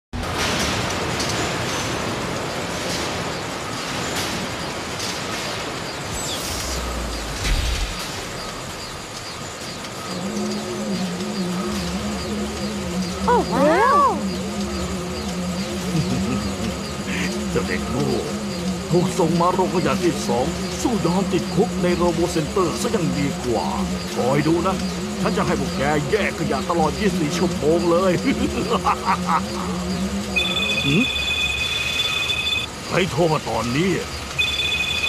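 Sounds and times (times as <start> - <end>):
noisy machinery rumble: 0.2 - 35.0
wavering low hum: 5.7 - 32.9.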